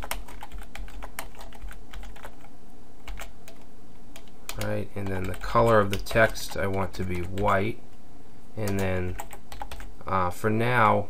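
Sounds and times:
typing on computer keyboard: 0.0 - 7.6, 8.6 - 9.9.

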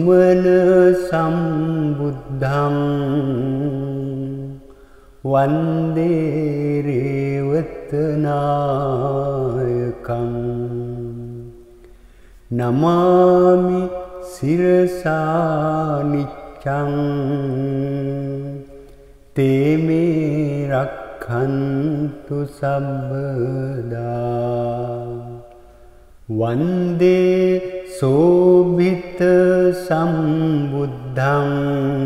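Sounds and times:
man chanting: 0.0 - 11.8, 12.5 - 25.6, 26.2 - 32.0.

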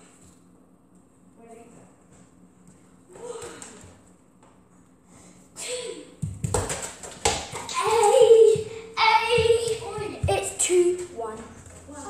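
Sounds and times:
child calling and shouting: 7.7 - 11.4.

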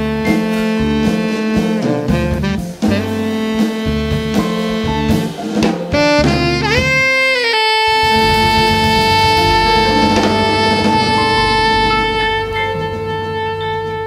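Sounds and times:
double bass: 0.0 - 14.0
drum kit: 0.0 - 14.0
piano: 0.0 - 14.0
tenor saxophone: 0.0 - 14.0.

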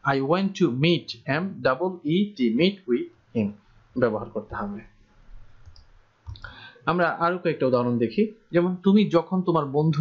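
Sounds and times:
man speaking: 0.0 - 5.0, 6.5 - 10.0
computer mouse click: 5.6 - 6.5.

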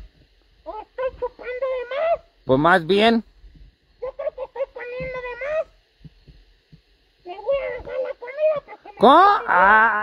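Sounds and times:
faint soft thumps: 6.0 - 7.0
person whining cry: 9.1 - 10.0.

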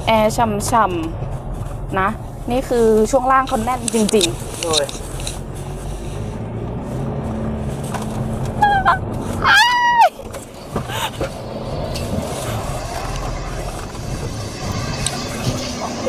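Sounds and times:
pickup truck cabin rumble: 0.0 - 16.0
woman squealing with laughter: 8.6 - 10.1.

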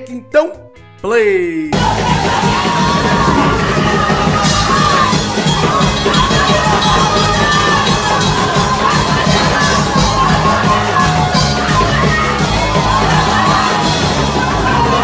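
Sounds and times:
congregation shouting and cheering: 1.7 - 15.0
worship band with drums: 1.7 - 15.0.

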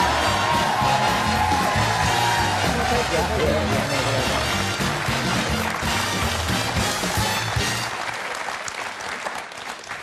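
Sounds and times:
walk-on music: 0.0 - 8.0
studio audience applauding: 0.0 - 10.0.

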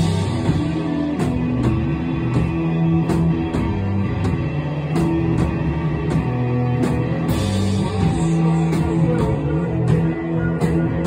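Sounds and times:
drum and cymbal strikes: 0.0 - 11.0
electric guitars and bass riff: 0.0 - 11.0.

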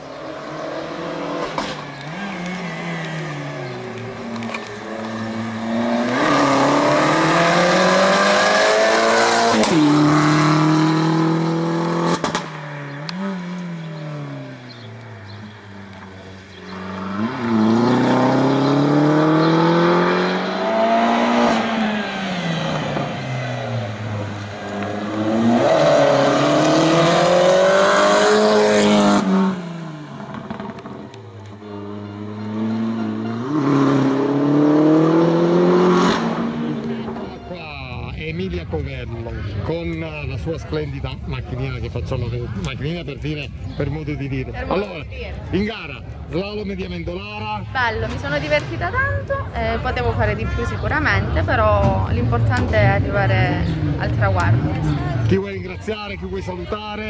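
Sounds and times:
race car engine revving: 0.0 - 39.1, 48.1 - 55.6.

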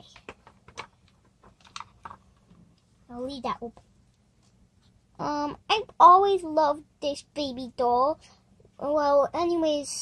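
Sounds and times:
plastic toys clicking and tapping: 0.0 - 2.5.

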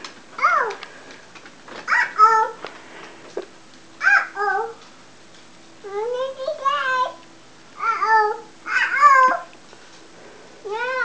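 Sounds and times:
toddler calling out: 1.9 - 2.6, 4.0 - 4.8, 7.8 - 9.5.

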